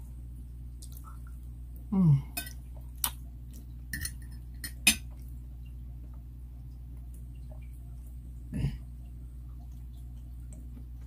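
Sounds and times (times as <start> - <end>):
fork clinking on ceramic plate: 4.0 - 5.1.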